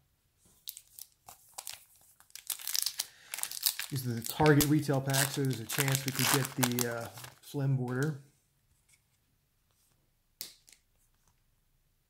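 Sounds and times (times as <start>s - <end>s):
plastic wrapper crinkling: 0.6s - 8.1s.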